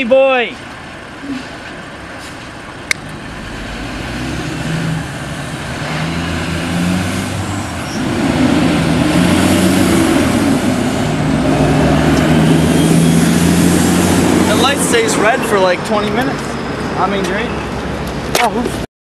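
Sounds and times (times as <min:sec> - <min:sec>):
road traffic: 0:00.0 - 0:18.9
heavy truck engine running: 0:00.7 - 0:18.3.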